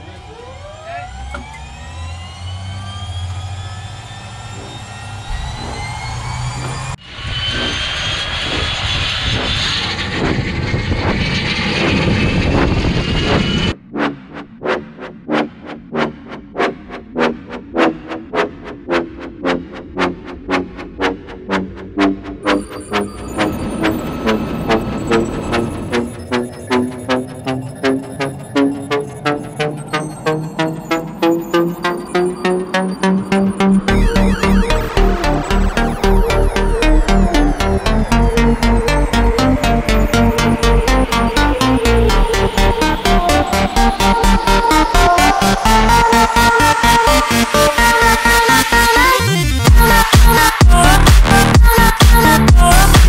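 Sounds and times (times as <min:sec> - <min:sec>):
helicopter turbine engines starting: 0:00.0 - 0:13.8, 0:20.0 - 0:53.0
music with steady beat: 0:30.3 - 0:53.0.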